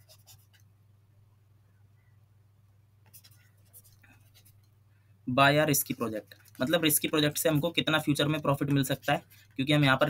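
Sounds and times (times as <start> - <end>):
stylus scratching and tapping: 0.0 - 0.7, 3.0 - 4.8, 5.6 - 10.0.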